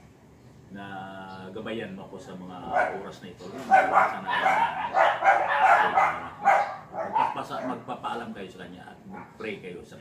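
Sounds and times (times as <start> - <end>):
dog barking: 2.6 - 7.9, 9.1 - 9.4.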